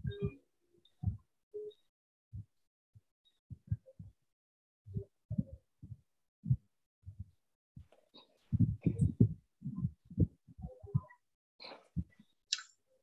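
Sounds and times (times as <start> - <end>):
muffled low thumps: 4.9 - 7.4, 8.5 - 11.2.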